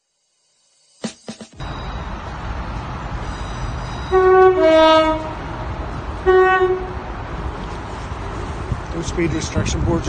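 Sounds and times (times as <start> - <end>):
two-tone train horn: 4.0 - 5.5, 6.2 - 7.1.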